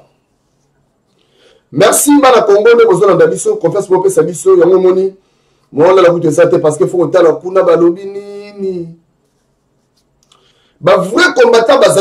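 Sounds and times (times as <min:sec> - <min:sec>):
man talking: 0:01.7 - 0:09.0, 0:10.8 - 0:12.0.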